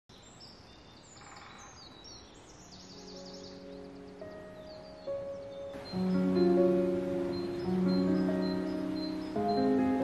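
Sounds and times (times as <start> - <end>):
faint outdoor hiss: 0.1 - 10.0
small birds chirping: 0.1 - 10.0.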